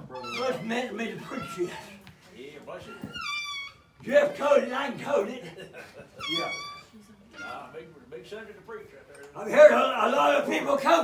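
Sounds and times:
high-pitched cry: 0:06.2 - 0:07.7.

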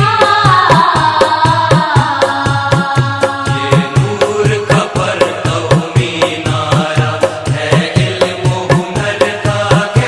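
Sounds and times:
fast drum beat: 0:00.0 - 0:10.0.

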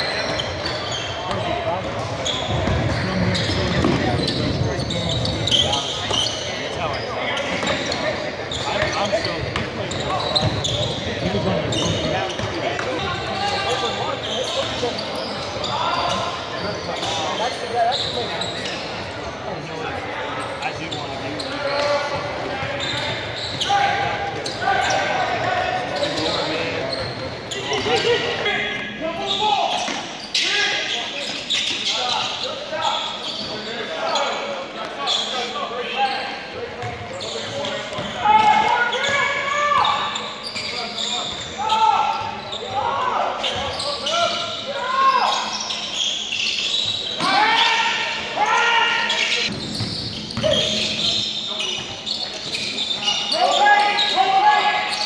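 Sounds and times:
players and spectators voices: 0:00.0 - 0:55.0.

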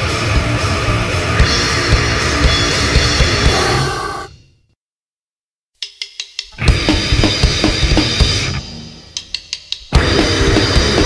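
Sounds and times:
drum and cymbal hits: 0:00.0 - 0:04.0, 0:05.8 - 0:11.0
heavy metal band playing: 0:00.0 - 0:04.3, 0:06.6 - 0:08.7, 0:09.9 - 0:11.0.

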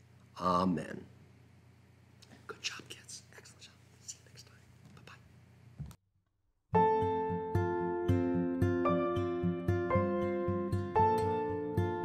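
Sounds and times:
faint whispered voice: 0:02.3 - 0:05.3.

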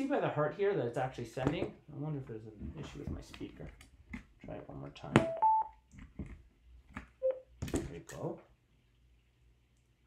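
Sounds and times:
short electronic beeps: 0:05.2 - 0:05.7, 0:07.2 - 0:07.4.

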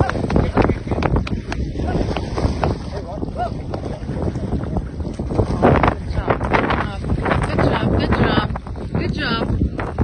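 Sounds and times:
water sloshing and splashing: 0:00.0 - 0:10.0
wind buffeting microphone: 0:00.0 - 0:10.0.

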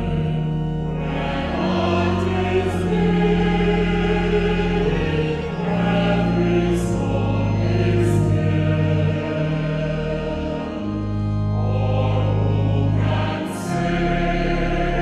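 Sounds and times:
choir singing a hymn: 0:00.0 - 0:15.0
low held notes: 0:00.0 - 0:15.0.

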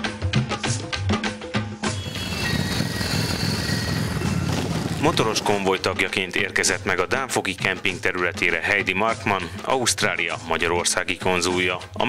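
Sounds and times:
motorcycles riding past: 0:02.0 - 0:06.0.

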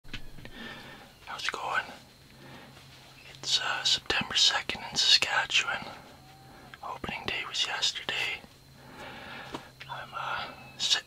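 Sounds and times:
man whispering: 0:01.2 - 0:02.1, 0:03.2 - 0:08.5, 0:09.8 - 0:11.0.

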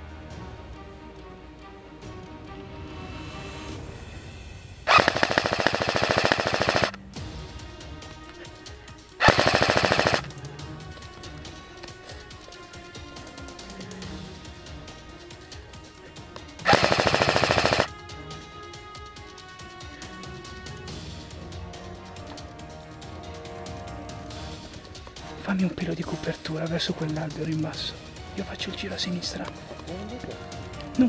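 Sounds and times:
background music: 0:00.0 - 0:31.0
airsoft rifle full auto bursts: 0:04.9 - 0:07.0, 0:09.2 - 0:10.3, 0:16.6 - 0:17.9.

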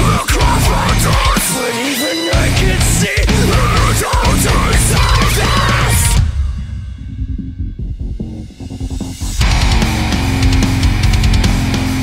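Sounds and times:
heavy rock song: 0:00.0 - 0:12.0
low pulsing bass: 0:02.4 - 0:12.0.

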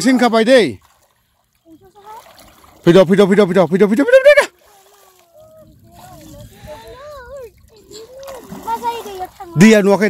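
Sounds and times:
shallow water splashing: 0:00.0 - 0:10.0
children's voices: 0:04.6 - 0:09.7.

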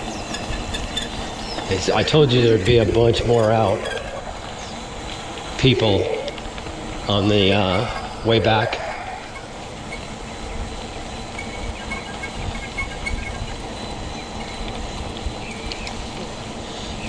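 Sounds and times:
bike tyres rumbling on pavement: 0:00.0 - 0:17.0
wind buffeting microphone: 0:00.0 - 0:17.0.

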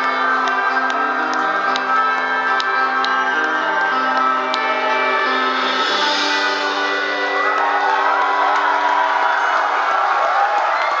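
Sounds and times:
audience cheering and whooping: 0:02.8 - 0:11.0.

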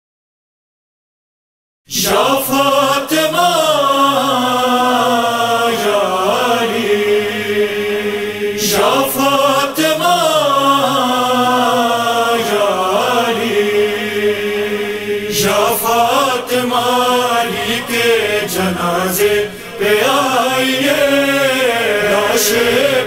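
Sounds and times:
man singing a lament: 0:01.9 - 0:07.3, 0:08.6 - 0:14.0.

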